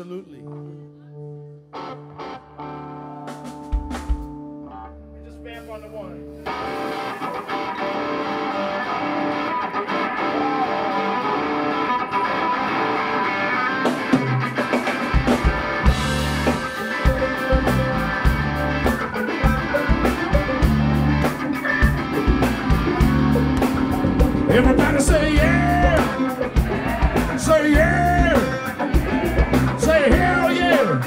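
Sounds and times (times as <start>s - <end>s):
electric guitars vamping: 1.7s - 31.0s
bass and drums: 3.3s - 4.4s, 14.1s - 31.0s.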